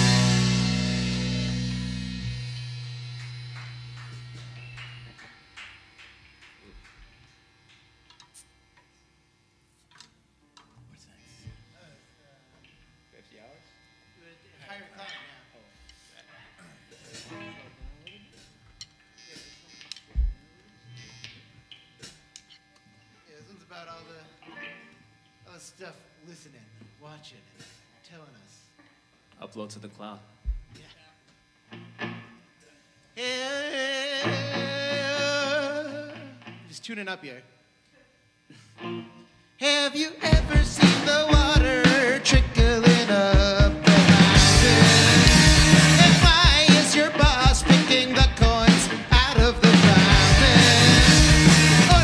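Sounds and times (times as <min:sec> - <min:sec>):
electric guitar and bass chord ringing: 0:00.0 - 0:07.6, 0:34.2 - 0:36.7, 0:38.8 - 0:52.0
amplifier hum: 0:00.0 - 0:09.4, 0:16.7 - 0:27.5, 0:37.6 - 0:52.0
quiet off-mic talk: 0:10.6 - 0:31.4.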